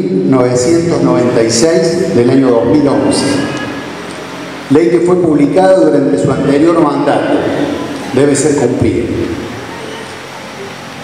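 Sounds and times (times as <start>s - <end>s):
echo of amplified speech: 0.0s - 11.0s.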